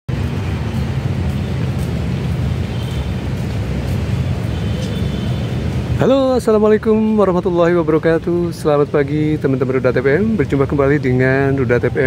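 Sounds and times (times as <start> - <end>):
city ambience rumble: 0.1 - 12.0.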